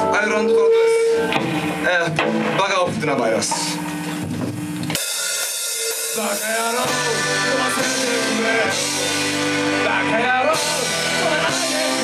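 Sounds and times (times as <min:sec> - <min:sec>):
punk band with accordion playing: 0:04.9 - 0:12.0.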